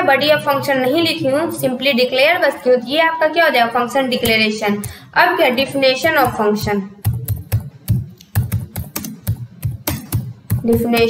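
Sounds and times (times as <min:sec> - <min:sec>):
keyboard typing: 0:07.0 - 0:11.0.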